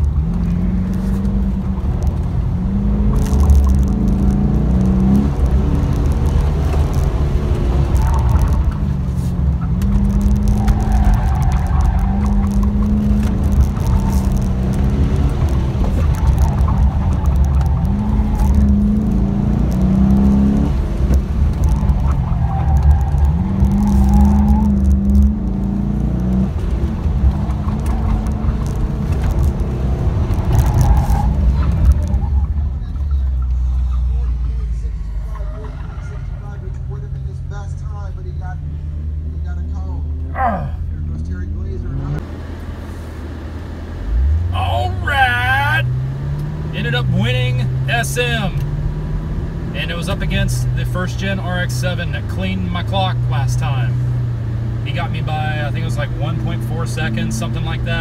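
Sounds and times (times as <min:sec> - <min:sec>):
car engine accelerating: 0:00.0 - 0:58.0.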